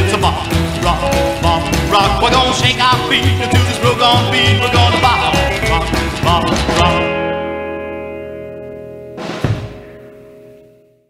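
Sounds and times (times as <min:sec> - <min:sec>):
drum and cymbal hit: 0:09.2 - 0:10.2.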